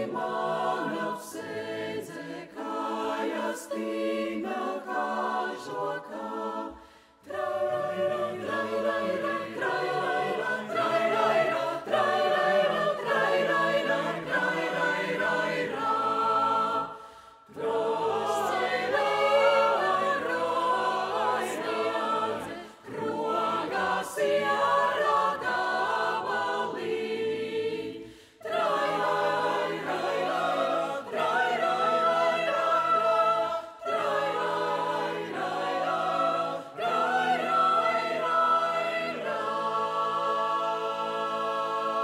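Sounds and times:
mixed choir singing a cappella: 0.0s - 42.0s.

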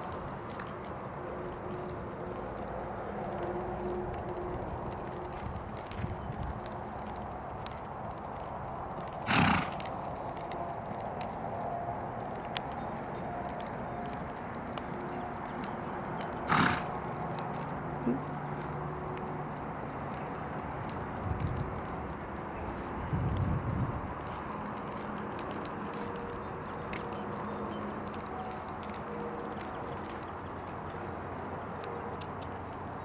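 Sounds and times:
hooves on dirt: 0.0s - 33.0s.

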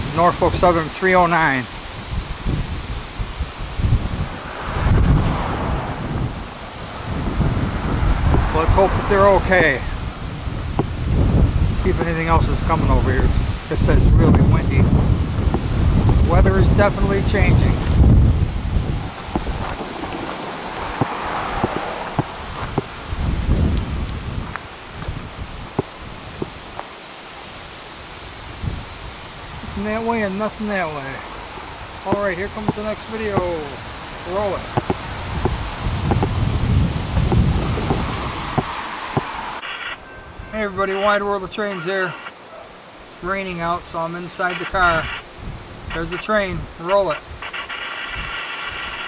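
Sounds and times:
gusty wind buffeting microphone: 0.0s - 41.4s, 44.6s - 49.0s
brush rustling: 14.8s - 40.0s.

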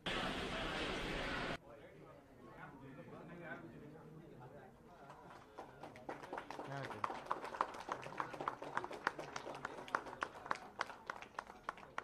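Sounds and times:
scattered hand claps: 5.1s - 12.0s.

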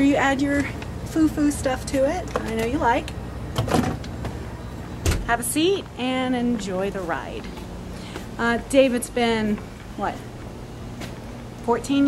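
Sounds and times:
refrigerator low hum: 0.0s - 12.0s.

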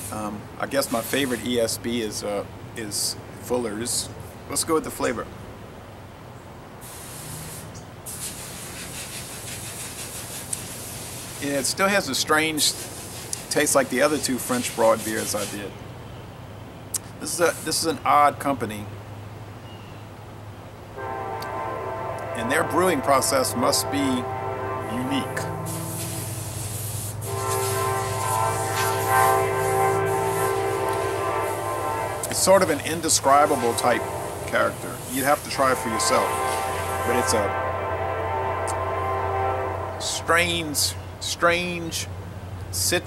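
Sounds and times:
low steady hum: 20.6s - 35.2s
train horn chord: 21.0s - 40.9s.

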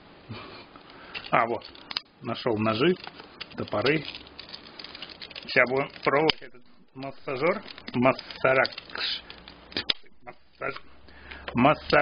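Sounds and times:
packaging rustles and clicks: 1.1s - 12.0s
plastic tie snapping: 7.4s - 10.1s.

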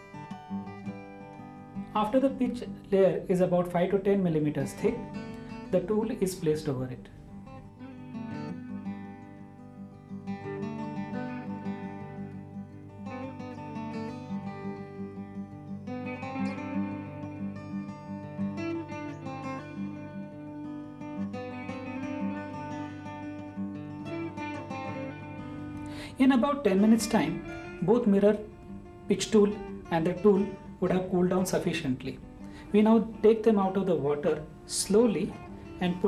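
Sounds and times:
acoustic guitar music: 0.0s - 36.0s.

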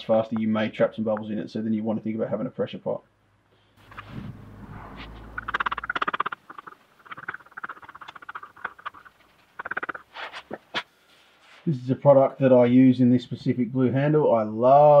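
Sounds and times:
stick scraping plastic cup: 5.4s - 10.9s.

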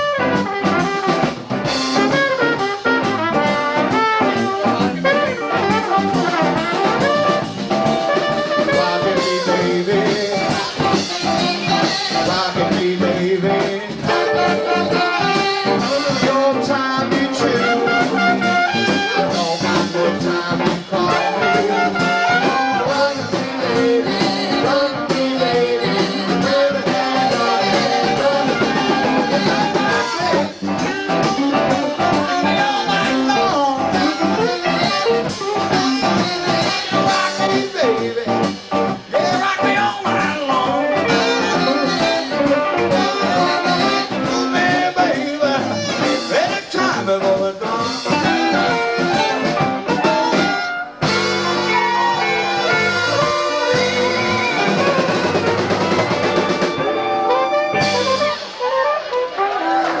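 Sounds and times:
drums: 0.0s - 60.0s
electric guitar: 0.0s - 60.0s
person singing: 8.2s - 60.0s.

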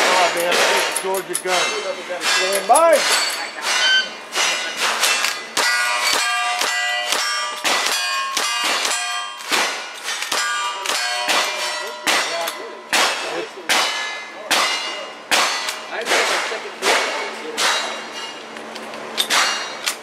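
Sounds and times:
steel target clanging: 0.0s - 18.5s, 19.1s - 20.0s.

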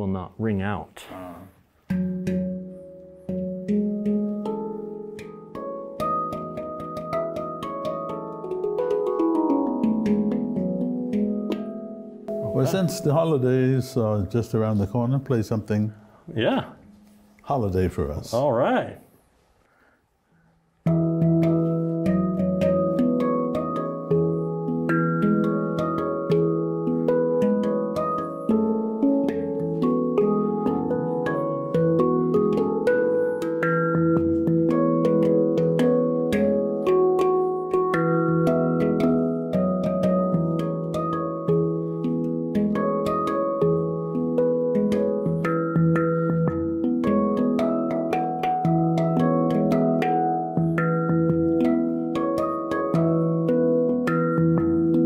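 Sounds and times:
handpan melody: 1.6s - 17.4s, 20.8s - 55.0s
repeated low handpan note: 1.8s - 15.5s, 20.8s - 55.0s.

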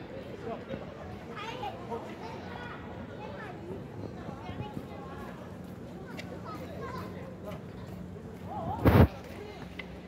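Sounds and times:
thump on phone microphone: 8.8s - 9.1s.

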